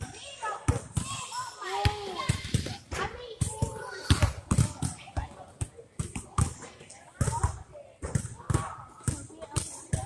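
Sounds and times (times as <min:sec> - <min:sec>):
basketballs bouncing on gym floor: 0:01.8 - 0:10.0.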